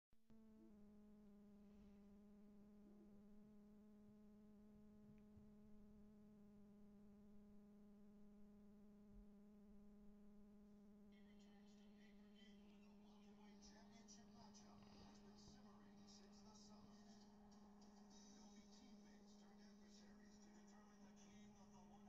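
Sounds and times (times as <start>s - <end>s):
faint buzzing hum: 0.3s - 22.0s.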